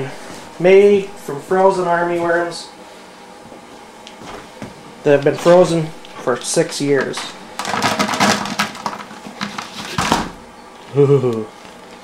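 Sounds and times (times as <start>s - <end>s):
frozen worms clattering into bucket: 7.6s - 10.0s.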